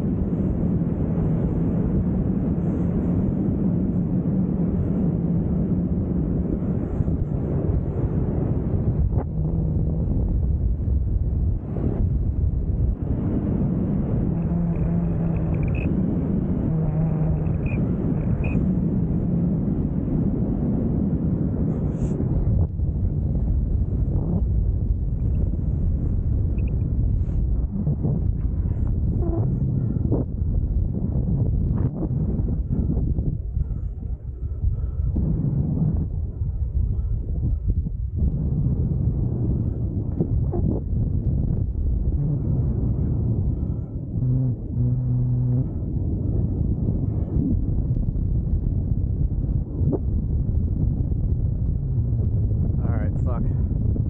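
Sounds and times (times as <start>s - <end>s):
faint humming tones: 0.0s - 54.0s
wind rushing over microphone: 0.0s - 54.0s.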